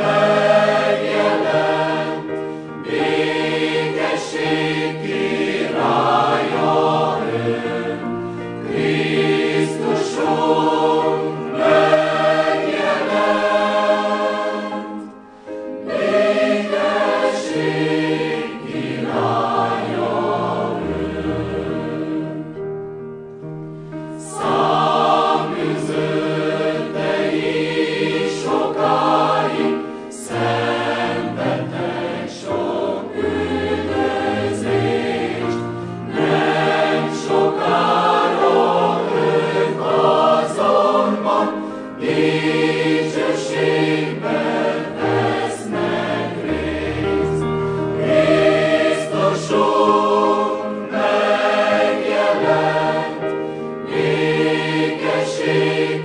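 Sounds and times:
mixed choir singing: 0.0 - 22.6, 23.9 - 56.0.

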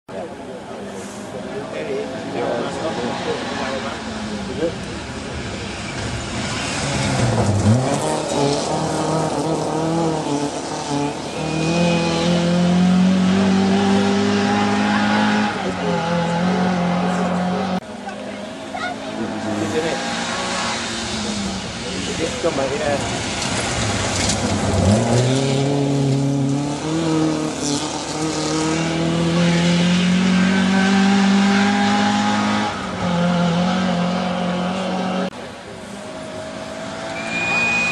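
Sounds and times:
rally car engine revving: 0.3 - 37.9.

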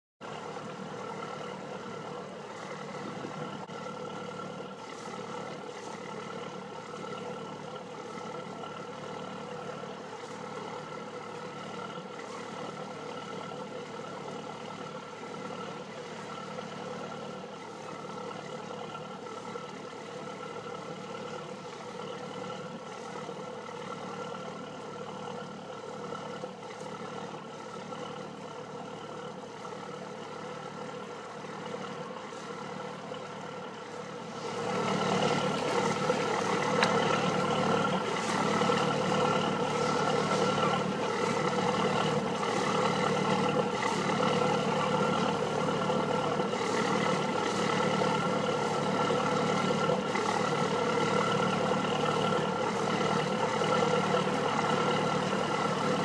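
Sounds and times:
boat engine idling: 0.2 - 56.0.

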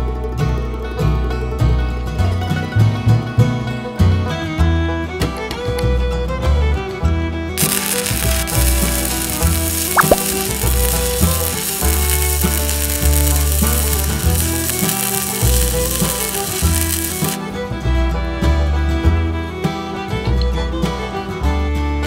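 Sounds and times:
background music: 6.6 - 22.0
welding arc crackling: 7.6 - 17.4.

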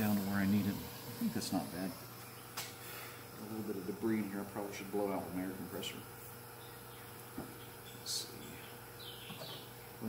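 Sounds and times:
faint workshop hum: 0.0 - 10.0.

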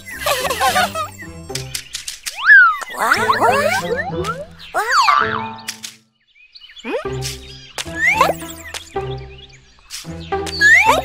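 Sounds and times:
light children's music: 0.0 - 6.0, 6.8 - 11.0
cartoon boing and swoop effects: 2.4 - 5.8.

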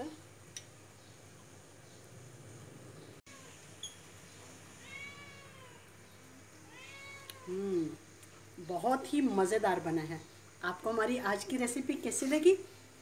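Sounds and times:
cat meowing: 4.8 - 5.9, 6.7 - 7.6.

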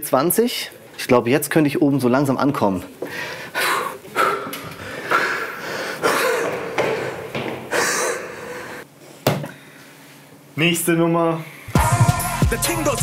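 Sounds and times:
man panting: 3.0 - 8.8.

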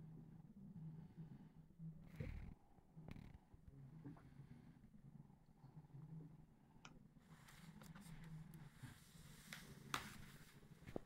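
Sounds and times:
low steady hum: 0.0 - 11.0
soft rustle: 7.3 - 11.0.

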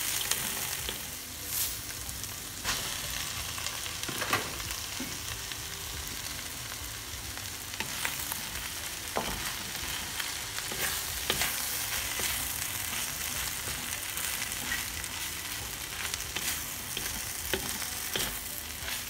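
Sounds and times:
food sizzling in a hot pan: 0.0 - 19.0.

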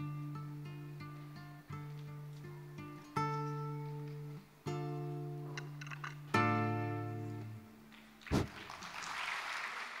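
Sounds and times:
audience applause: 8.2 - 10.0
loud thump: 8.3 - 8.6.

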